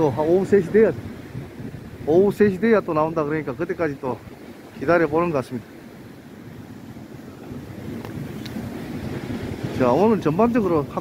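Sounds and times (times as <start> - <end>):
sea surf: 0.0 - 11.0
wind rumbling on microphone: 0.0 - 11.0.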